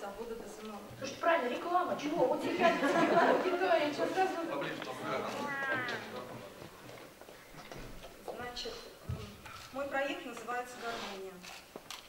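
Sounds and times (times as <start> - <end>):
person's drawn-out exclamation: 5.4 - 6.1.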